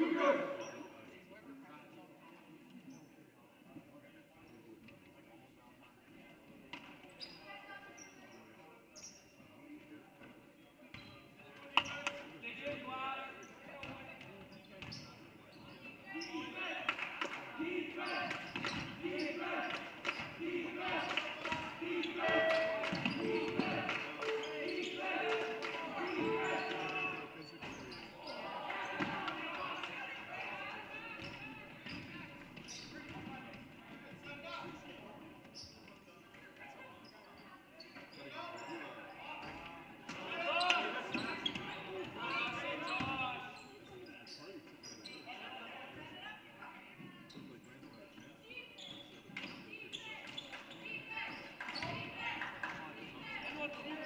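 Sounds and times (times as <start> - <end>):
voices in gymnasium: 0.0 - 54.0.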